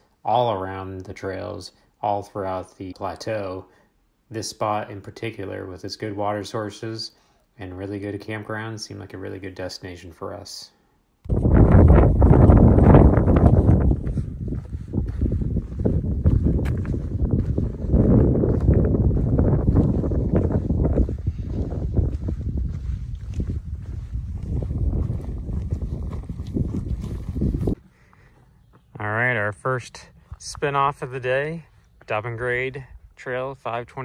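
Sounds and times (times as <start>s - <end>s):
wind buffeting microphone: 11.3s - 27.8s.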